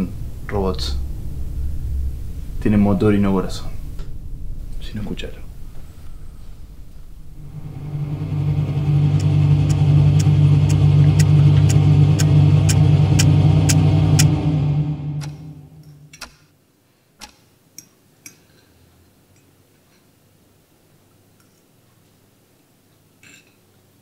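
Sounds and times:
mechanical motor hum: 0.0 - 16.4
cutlery clicking on plates: 17.2 - 18.7, 23.2 - 23.7.

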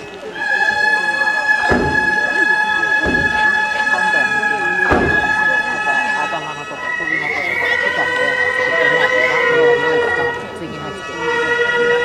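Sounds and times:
reedy bending melody: 0.0 - 12.0
sustained wind instrument drone: 0.0 - 12.0.

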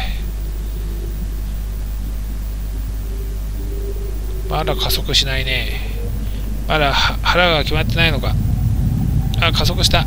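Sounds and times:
jet cabin engine drone: 0.0 - 10.0.

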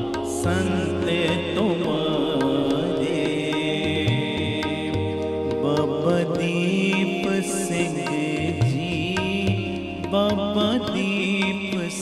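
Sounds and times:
harmonium chords: 0.0 - 12.0
person singing: 0.0 - 12.0.

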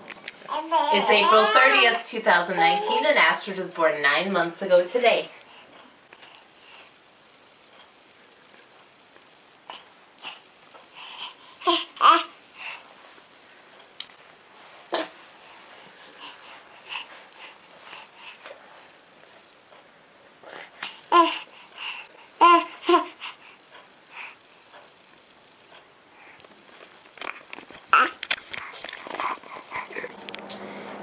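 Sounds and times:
baby vocal sounds: 0.5 - 3.1, 11.0 - 12.8, 20.8 - 23.6, 27.2 - 28.3
baby crying sound: 0.8 - 2.0.

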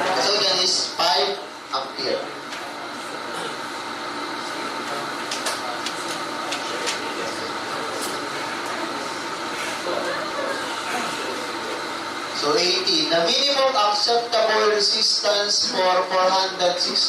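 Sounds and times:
classroom room noise: 0.0 - 17.0
faint voices: 2.2 - 12.5.

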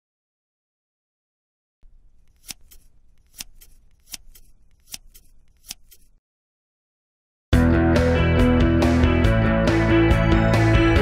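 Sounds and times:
paper rustle: 1.8 - 6.2
scissors snipping paper: 1.8 - 6.2.

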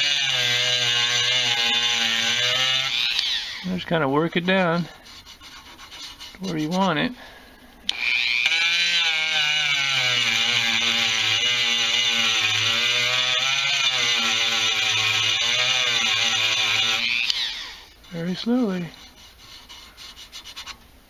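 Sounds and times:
rotary tool grinding metal: 0.0 - 6.9, 7.9 - 20.8.

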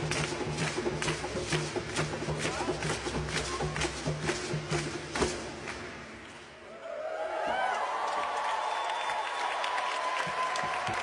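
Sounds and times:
crowd applauding: 6.7 - 11.0.

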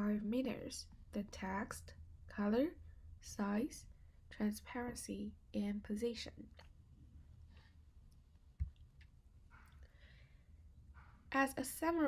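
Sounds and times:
faint low hum: 0.0 - 12.0
soft breath: 9.5 - 11.2.

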